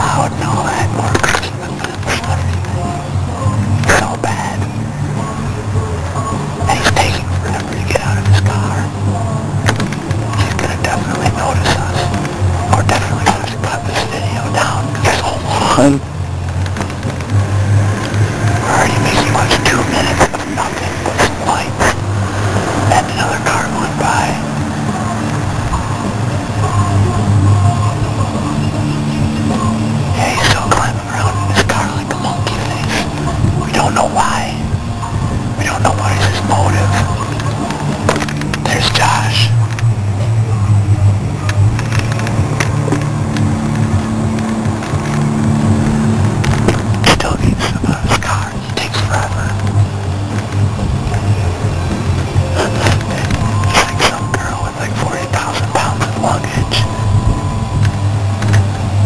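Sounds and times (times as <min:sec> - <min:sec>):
low whispering: 0:00.0 - 0:04.8, 0:06.6 - 0:09.1, 0:10.2 - 0:16.1, 0:17.8 - 0:37.8, 0:38.5 - 0:42.4, 0:47.0 - 0:49.9, 0:52.4 - 0:57.6
car engine idling: 0:00.0 - 0:59.0
muffled music with deep bass: 0:00.0 - 0:59.0.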